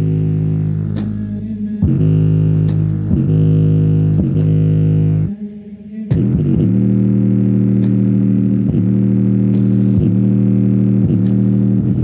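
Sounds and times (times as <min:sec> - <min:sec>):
bass-heavy electronic music: 0:00.0 - 0:12.0.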